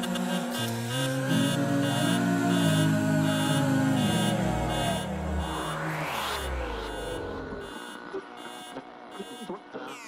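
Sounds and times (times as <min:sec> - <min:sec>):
bass: 0:00.0 - 0:09.7
sustained synthesizer tones: 0:00.0 - 0:10.0
repeating high pulse: 0:00.4 - 0:09.5.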